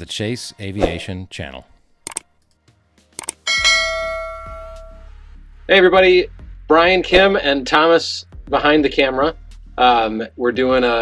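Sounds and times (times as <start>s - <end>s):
mouse clicks: 2.0s - 2.2s, 3.2s - 3.4s
notification bell ding: 3.5s - 5.0s.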